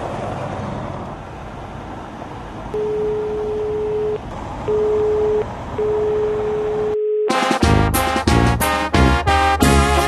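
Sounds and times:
car road and engine noise: 0.0 - 7.1.

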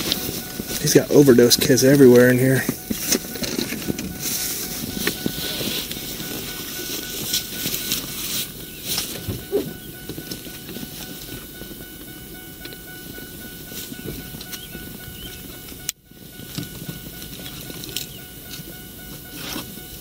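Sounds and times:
rustling and handling noises: 0.0 - 11.4.

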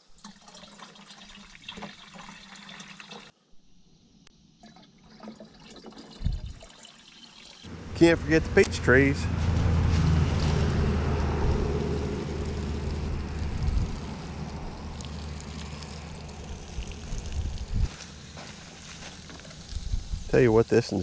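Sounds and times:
wind rumbling on microphone: 6.2 - 6.6, 8.4 - 17.9, 19.7 - 20.4
water sprinkling onto mulch: 8.0 - 21.0.

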